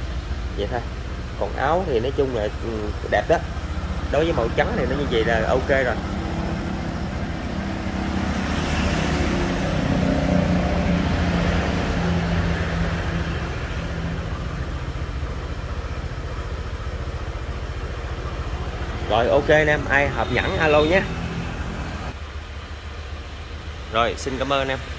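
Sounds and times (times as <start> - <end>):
scooter engine idling: 0.0 - 24.9.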